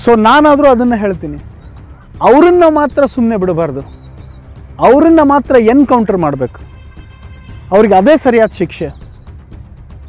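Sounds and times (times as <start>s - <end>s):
man speaking emphatically: 0.0s - 1.4s, 2.2s - 3.9s, 4.8s - 6.6s, 7.7s - 9.0s.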